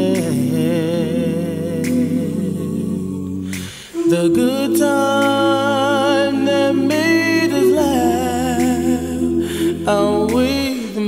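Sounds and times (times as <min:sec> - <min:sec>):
vocal group humming in harmony: 0:00.0 - 0:11.0
low bass voice: 0:04.0 - 0:11.0.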